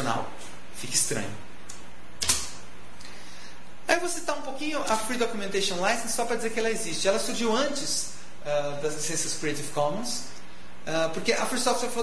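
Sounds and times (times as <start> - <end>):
man's voice: 0.0 - 1.4
steady background hiss: 0.0 - 12.0
sharp click: 1.6 - 2.6.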